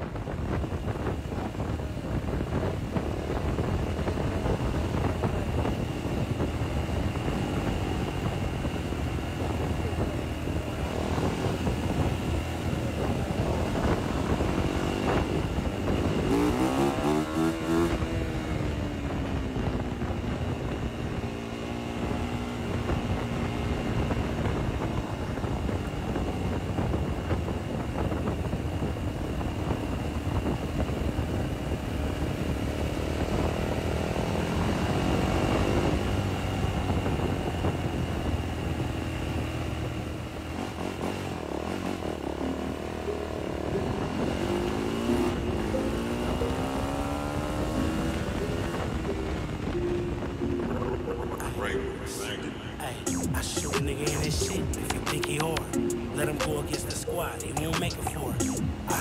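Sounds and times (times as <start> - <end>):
motorcycle engine revving: 0.0 - 28.1, 28.7 - 50.6.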